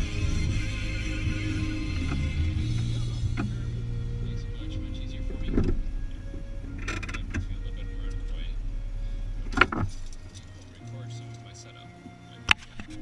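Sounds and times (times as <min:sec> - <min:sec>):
car engine idling: 0:00.0 - 0:13.0.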